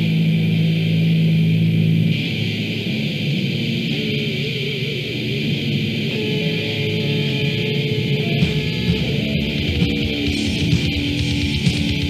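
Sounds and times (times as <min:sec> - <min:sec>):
lo-fi death thrash metal: 0:00.0 - 0:12.0.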